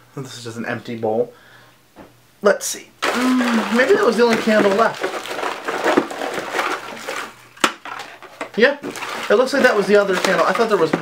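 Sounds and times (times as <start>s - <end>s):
container knock: 3.0s - 8.0s
rustling and handling containers: 3.0s - 11.0s.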